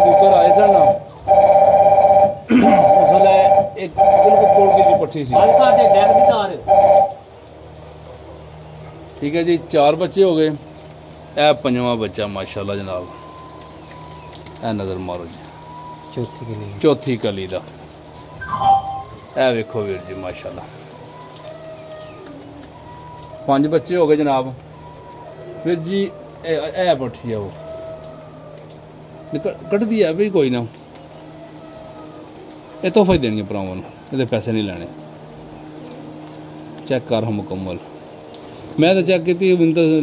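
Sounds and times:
steady electronic two-pitch tone: 0.0s - 7.2s, 18.4s - 19.2s.

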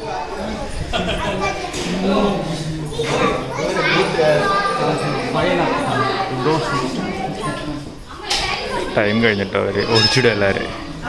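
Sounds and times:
children's voices: 0.0s - 11.0s
people talking and calling: 0.0s - 11.0s.

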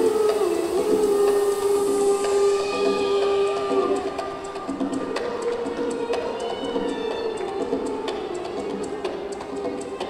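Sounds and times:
long held melody note: 0.0s - 7.9s.

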